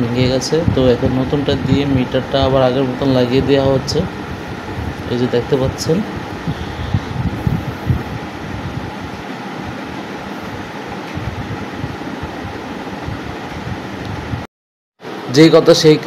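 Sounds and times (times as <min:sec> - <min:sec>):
fan running: 0:00.0 - 0:16.0.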